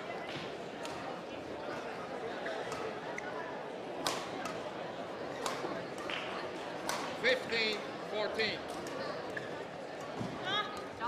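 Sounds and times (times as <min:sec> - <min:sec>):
murmur of hall noise: 0:00.0 - 0:11.0
racket hitting shuttlecock: 0:04.0 - 0:04.6, 0:05.4 - 0:07.1.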